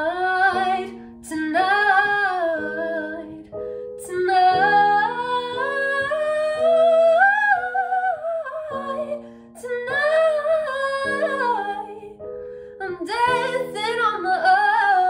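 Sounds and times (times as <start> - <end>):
electronic keyboard chords: 0.0 - 15.0.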